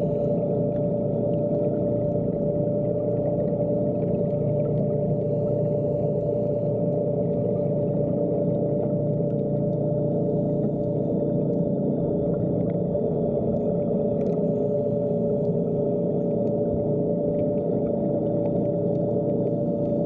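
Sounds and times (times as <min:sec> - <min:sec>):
underwater scooter motor humming: 0:00.0 - 0:20.0.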